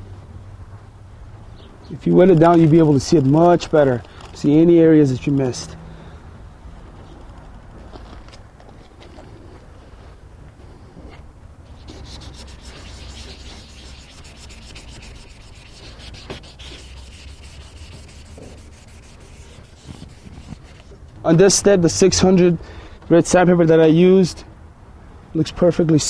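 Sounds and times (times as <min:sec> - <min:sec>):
sandpaper wet-sanding plastic: 0:11.7 - 0:20.9.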